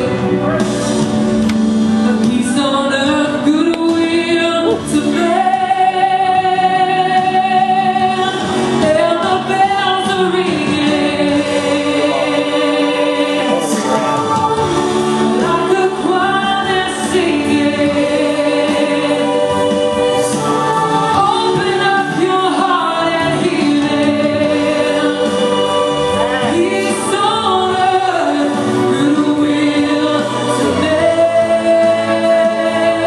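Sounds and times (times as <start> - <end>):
girls singing into microphones: 3.0 - 33.0.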